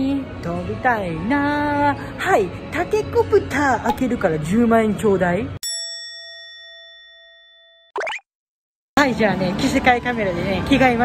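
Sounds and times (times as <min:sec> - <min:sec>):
bell-like chime: 0:05.6 - 0:07.9
short pop rising in pitch: 0:08.0 - 0:08.3.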